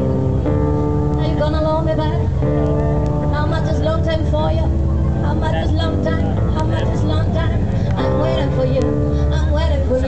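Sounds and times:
sustained keyboard notes: 0.0s - 9.7s
heavy bass: 0.0s - 10.0s
woman singing into a microphone: 1.2s - 2.4s, 3.3s - 10.0s.

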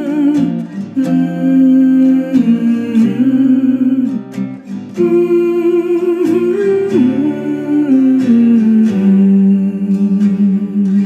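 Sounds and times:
woman humming: 0.0s - 4.4s, 5.0s - 11.0s
plucked acoustic guitar: 0.0s - 11.0s.

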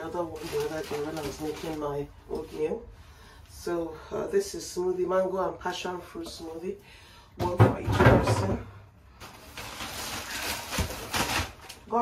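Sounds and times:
plastic bag rustling: 0.0s - 2.9s, 9.0s - 12.0s.

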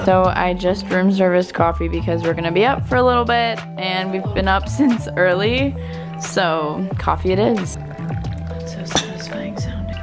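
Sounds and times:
background music with bass: 0.0s - 10.0s
liquid dripping and splashing: 5.8s - 10.0s
coffee pouring into a cup: 7.8s - 10.0s.

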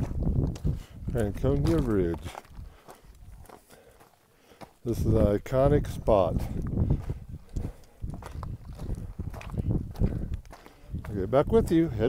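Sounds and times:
footsteps on gravelly trail: 0.0s - 12.0s
person speaking: 1.0s - 2.5s, 4.8s - 6.6s.

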